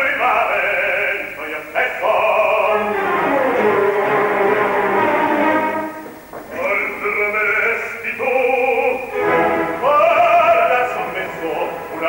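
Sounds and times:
operatic tenor singing: 0.0 - 12.0
orchestra playing: 2.6 - 6.2, 9.1 - 12.0.

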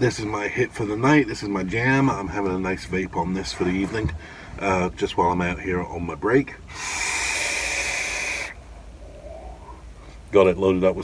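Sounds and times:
faint breath exhaling: 4.2 - 4.6, 6.7 - 10.3
air hissing with whistling note: 6.7 - 9.9.

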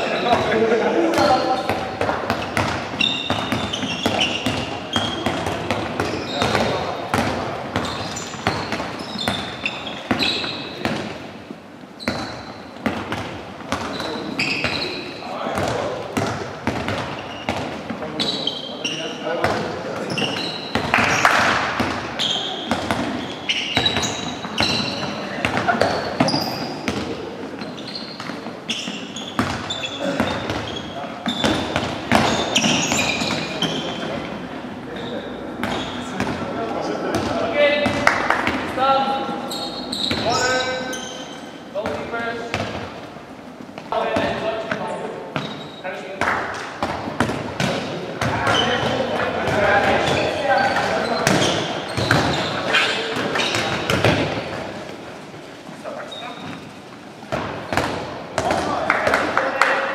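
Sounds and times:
balls bouncing on hall floor: 0.0 - 59.9.

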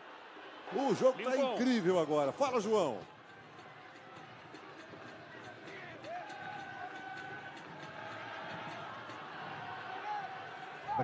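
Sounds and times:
stadium crowd murmur: 0.0 - 11.0.

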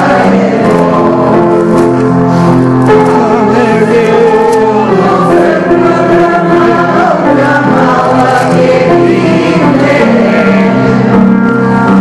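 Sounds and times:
man singing: 0.0 - 1.9, 2.9 - 10.8
congregation singing a hymn: 0.0 - 12.0.

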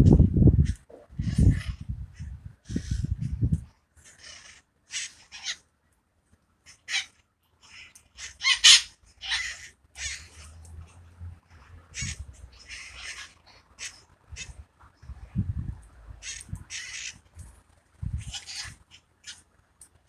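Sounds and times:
parakeets squawking: 0.6 - 3.2, 4.0 - 5.6, 6.7 - 11.0, 11.9 - 14.7, 16.2 - 17.4, 18.0 - 19.4.

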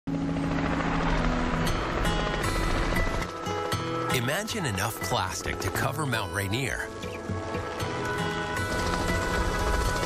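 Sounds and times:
rushing rumbling noise: 0.1 - 5.9, 6.7 - 10.0
background music with held notes: 0.1 - 10.0.

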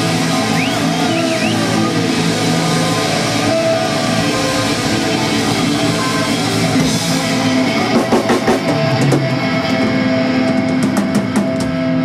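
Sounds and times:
bass guitar: 0.0 - 12.0
drums: 0.0 - 12.0
lead electric guitar: 0.0 - 12.0.

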